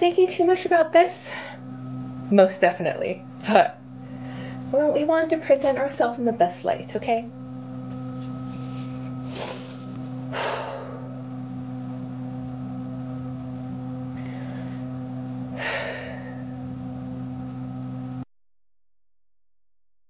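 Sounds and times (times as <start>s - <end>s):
electric fan hum: 0.0s - 18.3s
woman breathing deeply: 1.1s - 1.8s, 3.9s - 4.7s, 8.5s - 11.3s, 14.2s - 16.7s.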